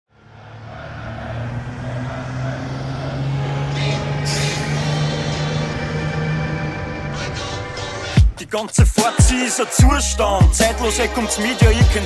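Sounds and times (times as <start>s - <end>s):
heavy vehicle engine running: 0.1s - 8.3s.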